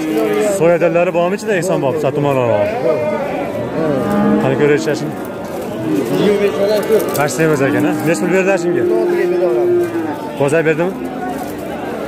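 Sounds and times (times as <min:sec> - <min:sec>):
men talking: 0:00.0 - 0:12.0
farm animal calling: 0:02.8 - 0:11.3.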